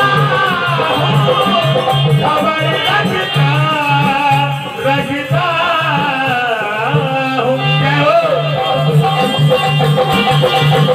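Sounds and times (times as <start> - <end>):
person singing: 0.0 - 9.5
regular drum pattern: 0.0 - 10.9
repeating instrumental melody: 0.0 - 10.9.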